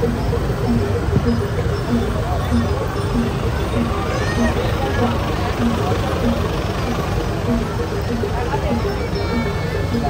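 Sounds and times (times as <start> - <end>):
crowd voices babbling: 0.0 - 10.0
low repeating music beat: 0.0 - 10.0
motorbike and truck engines: 0.0 - 10.0.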